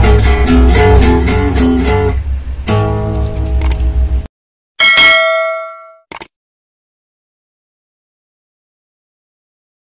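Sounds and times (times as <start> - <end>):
bright bell-like ding: 4.8 - 6.1
double click: 6.1 - 6.3.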